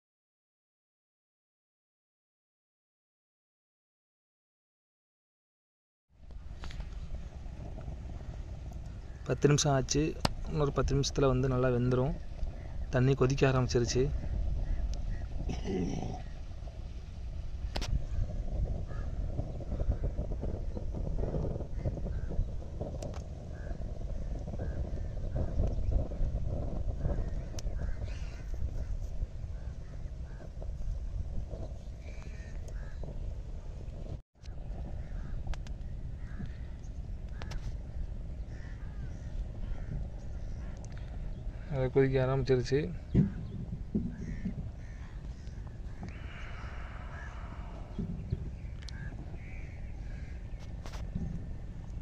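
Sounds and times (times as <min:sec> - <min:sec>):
fire rumbling: 0:06.2 - 0:52.0
wood fire crackling: 0:06.2 - 0:52.0
crows cawing: 0:09.0 - 0:09.4, 0:14.1 - 0:16.4, 0:18.9 - 0:20.2, 0:23.5 - 0:25.5, 0:27.0 - 0:29.0, 0:29.6 - 0:30.6, 0:32.0 - 0:33.0, 0:34.9 - 0:35.4, 0:36.2 - 0:37.7, 0:38.4 - 0:41.9, 0:44.1 - 0:51.0
short low-pitched burst: 0:43.0 - 0:51.7.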